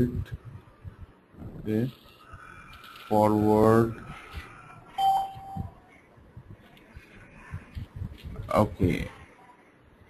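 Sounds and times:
electronic notification chime: 5.0s - 5.6s.

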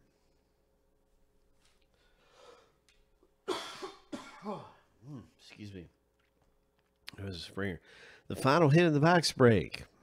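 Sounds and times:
man coughing: 3.4s - 5.4s.

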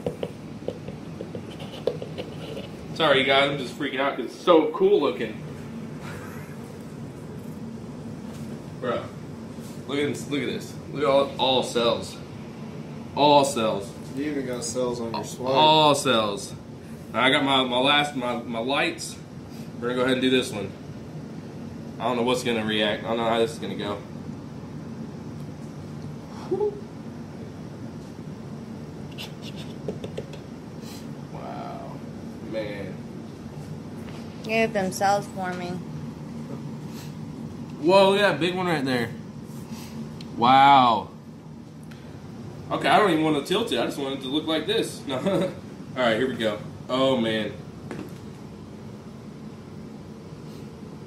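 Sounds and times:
low background hum: 0.0s - 51.0s.

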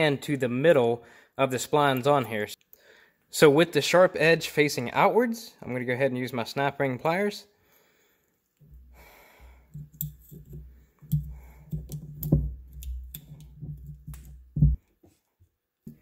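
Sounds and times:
small metallic clicks and scrapes: 9.7s - 14.4s.

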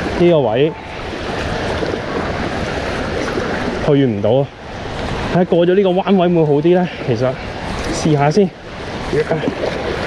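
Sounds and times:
water rushing down river channel: 0.0s - 10.0s.

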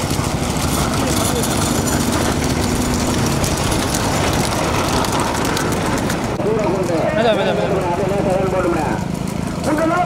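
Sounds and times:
road and wind noise: 0.0s - 10.0s
vehicle engine running: 0.0s - 10.0s.

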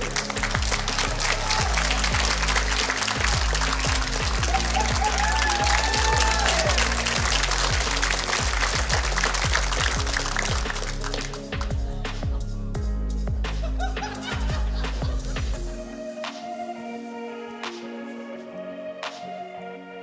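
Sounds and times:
audience applauding: 0.0s - 11.8s
music with low bass notes: 0.0s - 15.9s.

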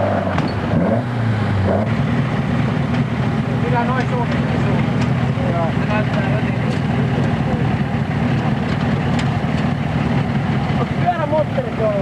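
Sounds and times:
engine idling: 0.4s - 12.0s.

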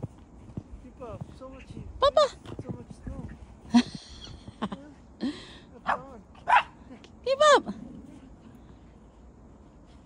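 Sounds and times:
small dog barking: 5.9s - 6.8s.

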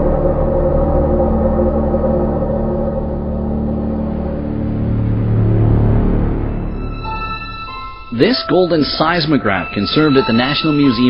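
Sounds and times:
deep rumble: 0.0s - 8.1s
gong ringing: 0.0s - 11.0s.

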